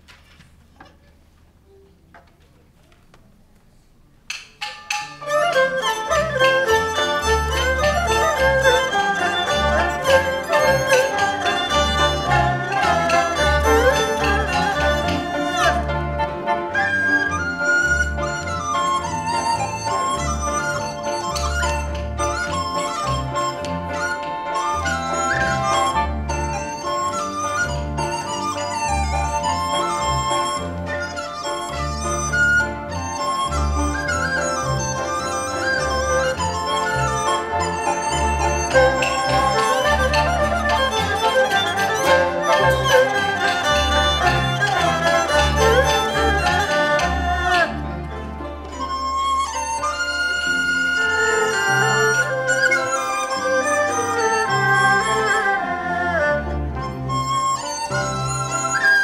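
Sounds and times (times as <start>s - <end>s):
sharp percussive strikes: 4.3s - 7.8s
bamboo flute melody: 4.6s - 59.0s
bowed strings: 4.9s - 59.0s.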